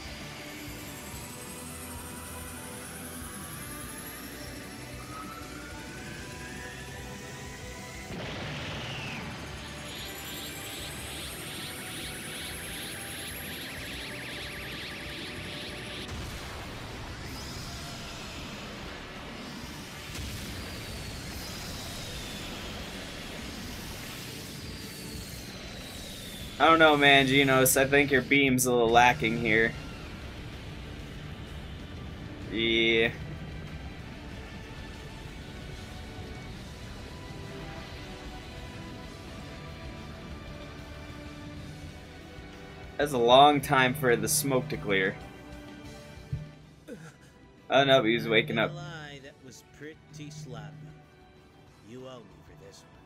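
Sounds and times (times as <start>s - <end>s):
energy beam rushing noise: 0.0s - 33.2s
rising high whines: 0.0s - 51.5s
background music: 0.0s - 53.0s.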